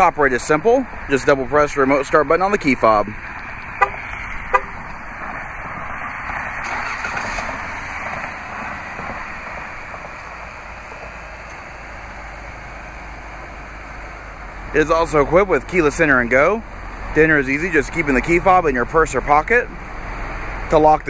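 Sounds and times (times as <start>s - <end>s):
car engine starting and idling: 0.0s - 21.0s
car horn chirp: 3.8s - 4.8s.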